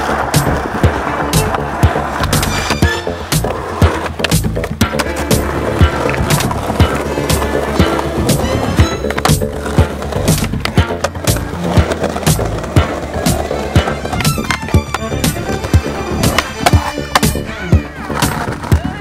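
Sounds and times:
background music: 0:00.0 - 0:19.0
skateboard clacks popping and landing: 0:00.0 - 0:19.0
skateboards rolling on concrete: 0:00.0 - 0:19.0.

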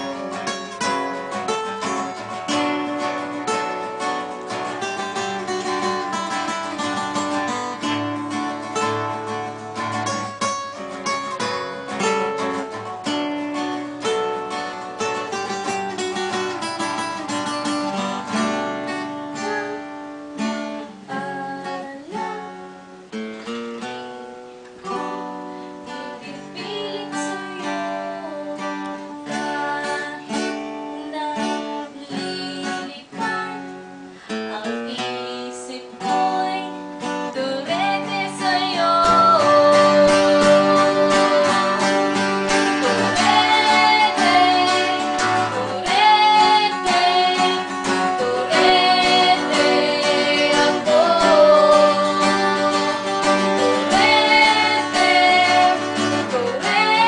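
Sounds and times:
person singing: 0:00.0 - 0:02.6, 0:17.7 - 0:23.1, 0:24.9 - 0:57.0
acoustic guitars playing: 0:00.0 - 0:57.0.

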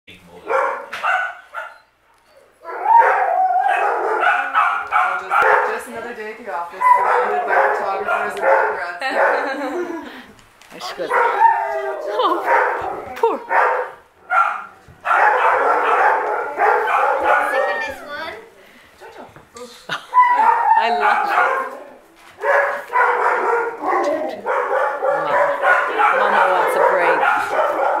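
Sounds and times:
dog vocalizing: 0:06.8 - 0:09.6, 0:22.5 - 0:28.0.

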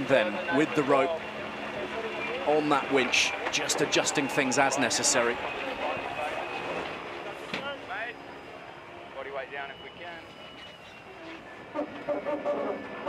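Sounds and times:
indistinct voices: 0:00.0 - 0:10.2.

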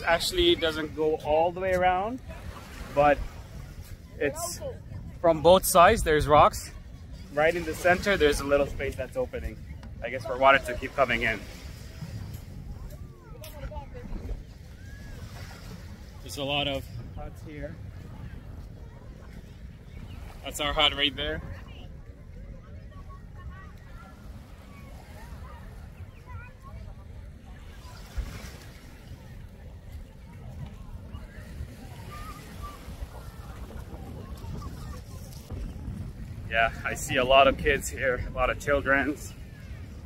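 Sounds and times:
faint distant voices: 0:00.0 - 0:40.0
small waves lapping: 0:00.0 - 0:40.0
wind buffeting microphone: 0:00.0 - 0:40.0.

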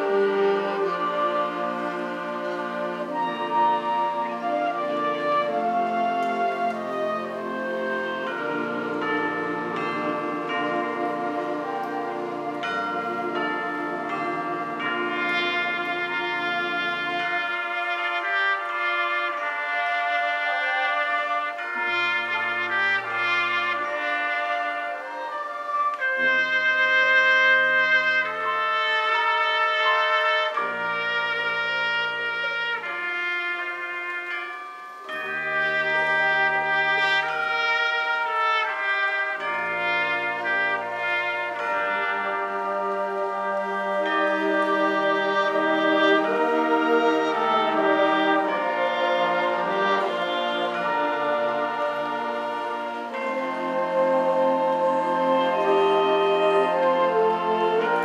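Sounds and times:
concert band playing: 0:00.0 - 0:58.0.

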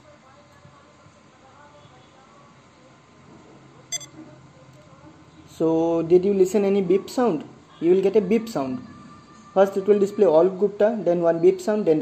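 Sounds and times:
high electronic beep: 0:03.9 - 0:04.1.

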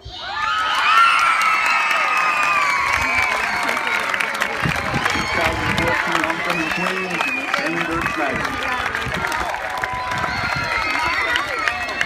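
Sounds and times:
crowd cheering and screaming: 0:00.0 - 0:12.0
clapping: 0:01.1 - 0:12.0.

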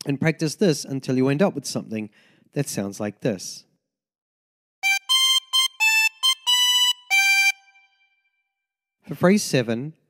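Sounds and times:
harmonica playing a tune: 0:04.8 - 0:08.2.

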